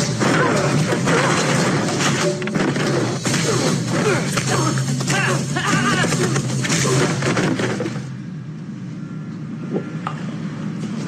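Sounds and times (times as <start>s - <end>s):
low steady drone: 0.0s - 11.0s.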